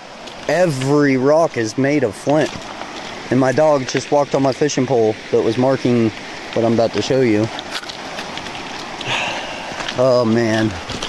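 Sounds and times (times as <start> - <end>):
creek flowing: 0.0 - 11.0
footsteps on loose stones: 0.1 - 4.8, 5.5 - 11.0.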